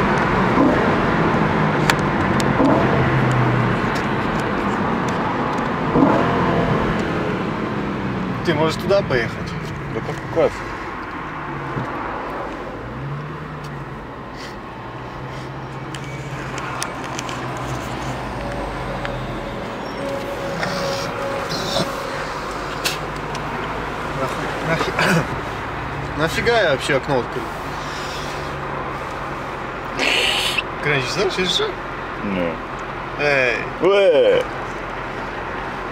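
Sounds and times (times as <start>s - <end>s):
car engine running: 0.0s - 14.2s, 15.1s - 33.6s
road and tyre noise: 0.0s - 35.9s.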